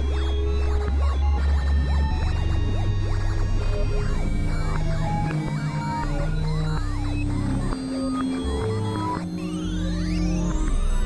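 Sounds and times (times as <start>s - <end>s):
synthesizer drone notes: 0.0s - 11.0s.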